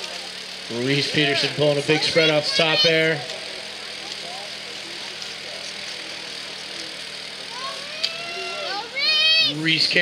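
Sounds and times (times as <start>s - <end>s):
distant spectators' voices: 0.0s - 10.0s
steady outdoor hiss: 0.0s - 10.0s.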